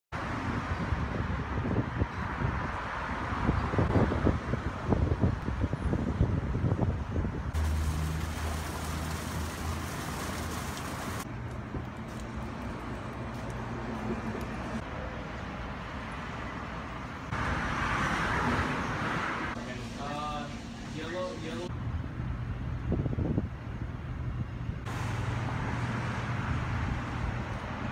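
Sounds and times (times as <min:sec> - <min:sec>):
traffic noise: 0:00.1 - 0:27.9
waterfall splashing into pond: 0:07.6 - 0:11.3.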